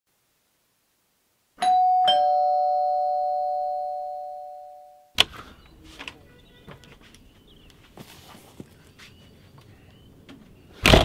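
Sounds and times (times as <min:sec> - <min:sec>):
two-tone doorbell chime: 0:01.6 - 0:05.1.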